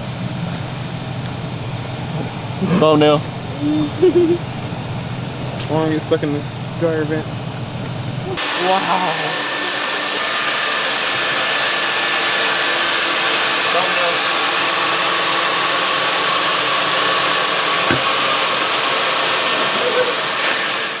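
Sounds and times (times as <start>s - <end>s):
vacuum cleaner hissing with whine: 8.3s - 21.0s.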